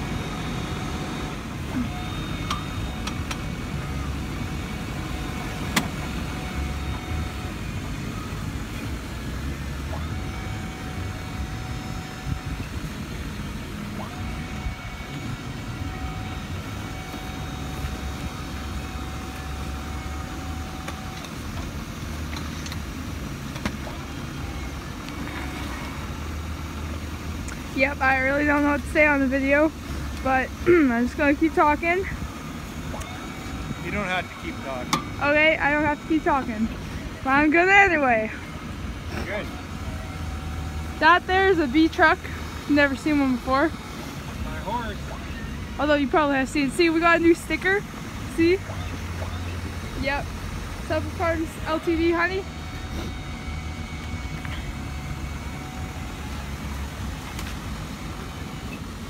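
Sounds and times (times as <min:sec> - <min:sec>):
truck engine idling: 0:00.0 - 0:59.0.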